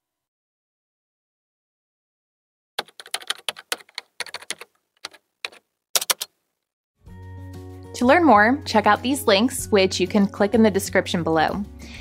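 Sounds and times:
computer keyboard typing: 2.8s - 6.3s.

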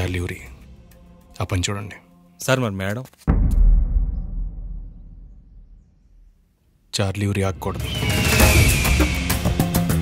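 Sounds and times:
low dramatic boom: 3.3s - 6.3s.

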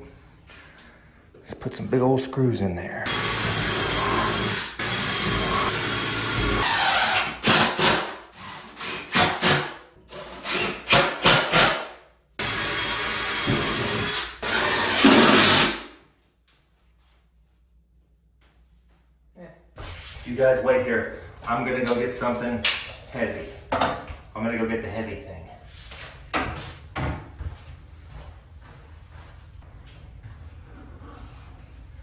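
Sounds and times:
cordless drill driving screws: 3.1s - 7.2s, 12.4s - 15.7s.

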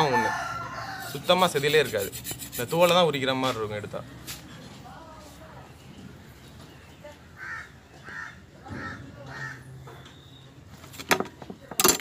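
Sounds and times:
crow cawing: 7.4s - 9.7s.

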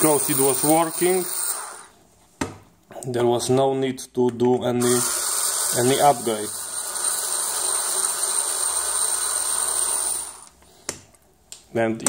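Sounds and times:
electric screwdriver whining: 0.0s - 1.9s, 4.8s - 10.6s.

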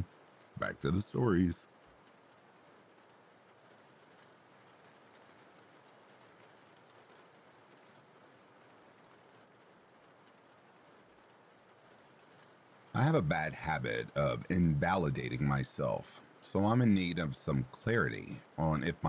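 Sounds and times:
faint steady rain: 0.0s - 19.0s.

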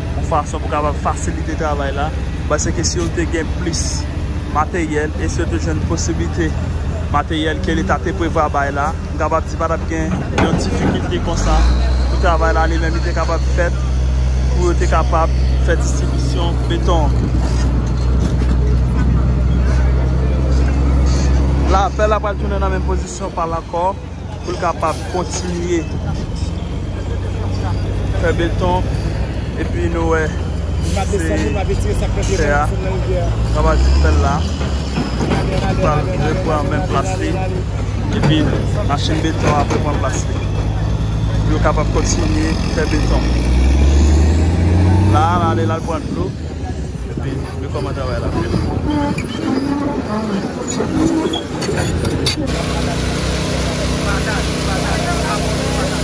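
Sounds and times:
diesel engine droning: 0.0s - 56.0s
voices talking: 0.0s - 56.0s.

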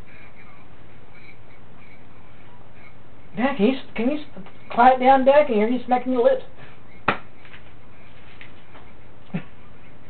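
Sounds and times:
steady hum and hiss: 0.0s - 10.0s.

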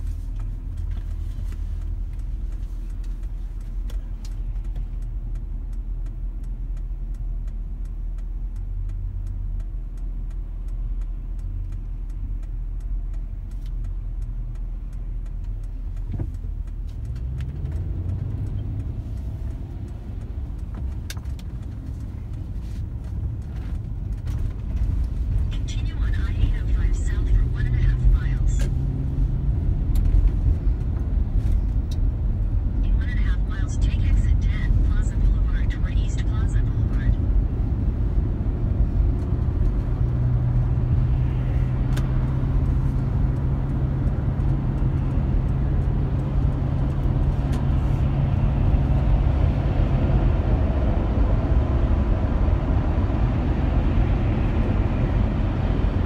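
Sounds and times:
car engine: 0.0s - 56.0s
tyre road noise: 0.0s - 56.0s.

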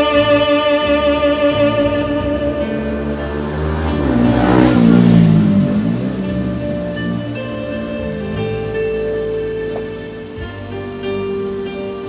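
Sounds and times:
saxophone low sliding note: 0.0s - 10.7s
backing track: 0.0s - 12.0s.

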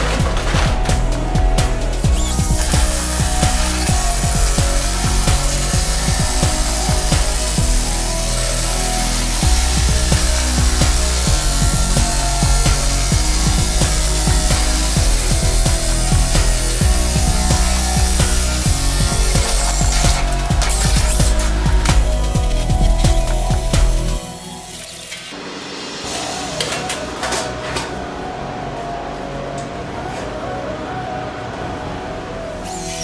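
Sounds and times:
drill nibbler cutting steel sheet: 0.0s - 25.4s, 32.7s - 33.0s
background music with bass: 0.0s - 33.0s.

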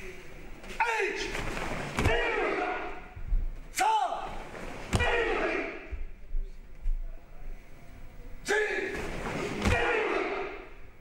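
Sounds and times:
group short shouts: 2.0s - 3.1s, 3.8s - 5.9s, 8.5s - 10.7s.

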